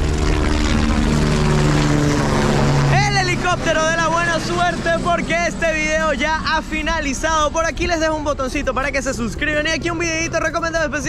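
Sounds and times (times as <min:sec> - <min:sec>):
helicopter engine and rotor drone: 0:00.0 - 0:11.0.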